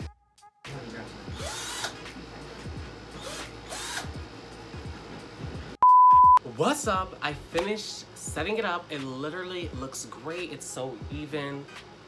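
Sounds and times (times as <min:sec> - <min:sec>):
background music with bass line: 0:00.0 - 0:12.0
power drill running: 0:01.3 - 0:02.0, 0:03.2 - 0:04.2
loud steady beep: 0:05.8 - 0:06.4.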